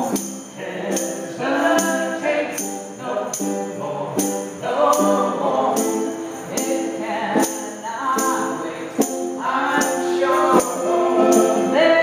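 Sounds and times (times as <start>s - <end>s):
strummed acoustic guitar: 0.0s - 12.0s
tambourine struck: 0.0s - 12.0s
woman singing: 0.0s - 12.0s
man singing: 6.6s - 12.0s.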